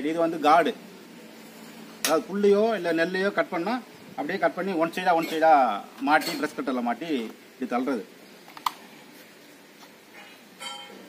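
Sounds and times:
man speaking: 0.0s - 0.8s, 2.0s - 8.1s.

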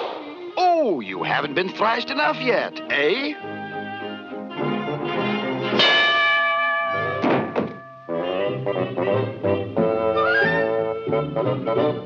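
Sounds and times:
orchestral cartoon music: 0.0s - 6.0s, 8.1s - 12.0s.

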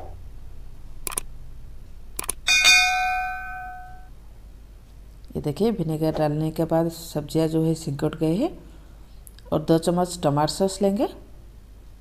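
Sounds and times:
mouse clicks: 1.0s - 1.3s
bell ding: 2.5s - 4.1s.

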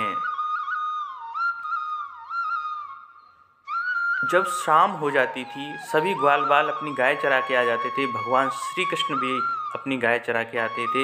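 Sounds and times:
solo flute melody: 0.0s - 11.0s.

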